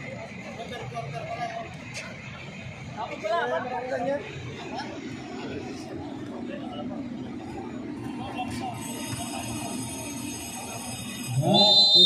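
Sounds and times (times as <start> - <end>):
murmur of spectators: 0.0 - 12.0.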